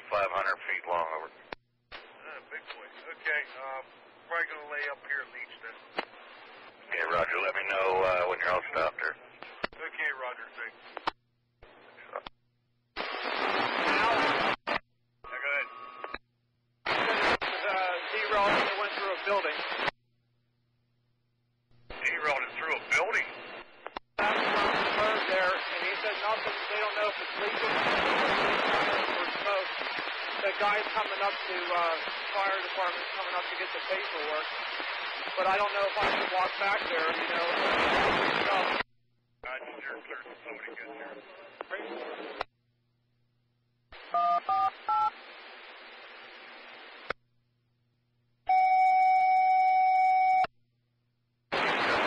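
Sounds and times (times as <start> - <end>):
radio speech: 0.0 - 11.1, 11.7 - 12.3, 13.0 - 16.2, 16.9 - 19.9, 21.9 - 38.8, 39.4 - 42.5
static hiss: 16.9 - 19.9, 22.0 - 38.8, 44.8 - 47.2.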